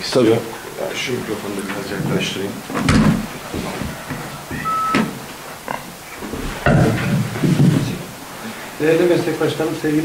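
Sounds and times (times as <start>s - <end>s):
short high tone: 4.5s - 5.1s.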